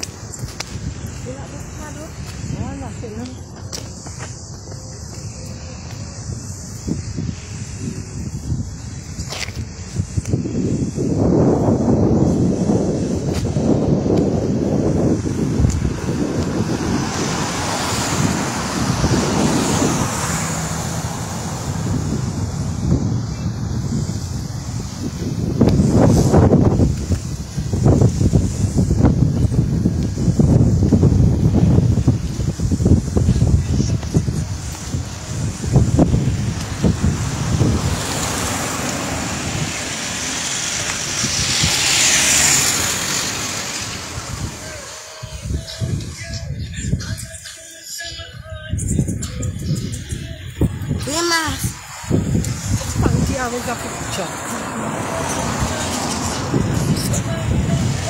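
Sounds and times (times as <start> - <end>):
car road noise: 0.0 - 58.0
wind buffeting microphone: 0.0 - 58.0.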